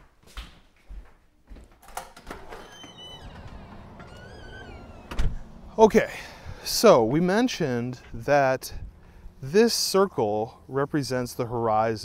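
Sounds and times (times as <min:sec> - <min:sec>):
footsteps on hardwood floor: 0:00.0 - 0:01.9
door opening with a click: 0:01.8 - 0:05.7.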